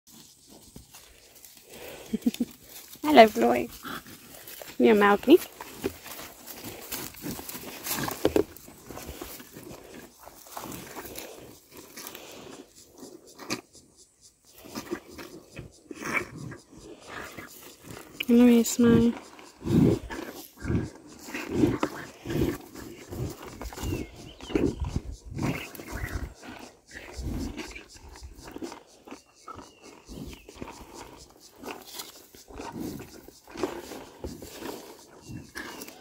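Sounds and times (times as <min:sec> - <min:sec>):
rhino calf slurping milk: 0:00.1 - 0:36.0.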